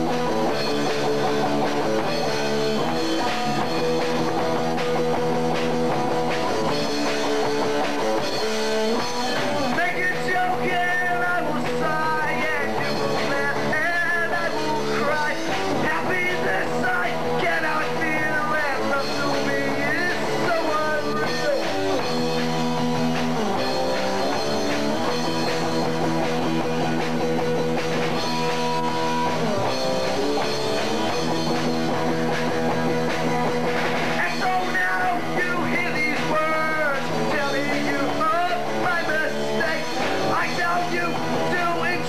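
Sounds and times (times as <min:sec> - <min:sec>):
rock band playing: 0:00.0 - 0:42.0.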